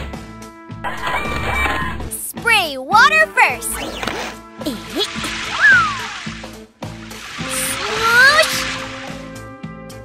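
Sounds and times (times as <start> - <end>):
background music: 0.0 - 10.0
hissing water spray: 4.7 - 9.4.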